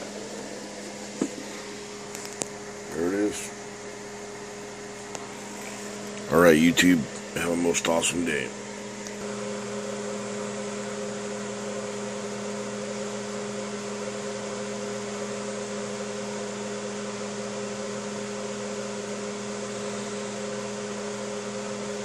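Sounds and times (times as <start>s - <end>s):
steady machine hum: 0.0s - 22.0s.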